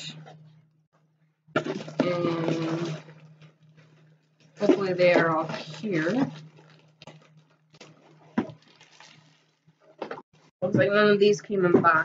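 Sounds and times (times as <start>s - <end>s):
low steady hum: 0.0s - 12.0s
plastic packaging crinkling: 1.6s - 10.5s.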